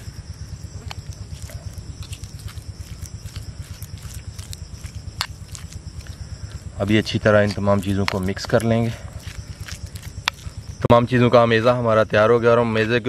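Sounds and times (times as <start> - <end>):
metal spoon mashing paste in bowl: 0.8 - 10.9.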